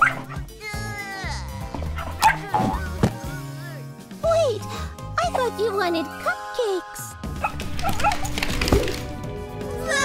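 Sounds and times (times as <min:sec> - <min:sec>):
cartoon puppy barking: 0:00.0 - 0:02.8
background music: 0:00.0 - 0:10.0.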